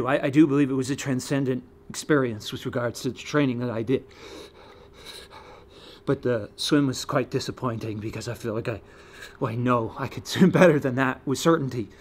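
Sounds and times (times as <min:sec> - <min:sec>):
man breathing: 0:04.1 - 0:06.1, 0:08.8 - 0:09.4.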